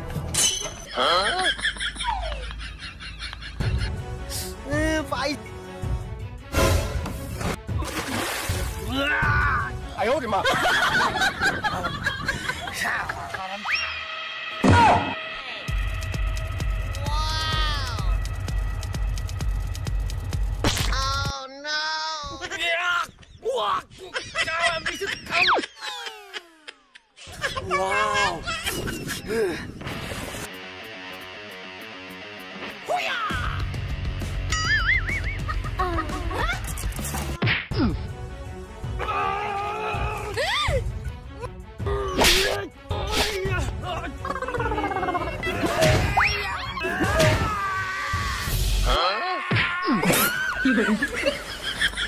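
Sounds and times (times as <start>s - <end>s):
background music: 0.0s - 22.8s, 27.3s - 52.0s.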